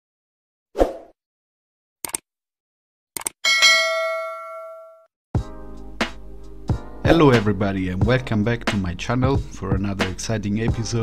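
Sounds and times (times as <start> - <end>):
notification bell ding: 3.5 - 5.0
music: 5.4 - 11.0.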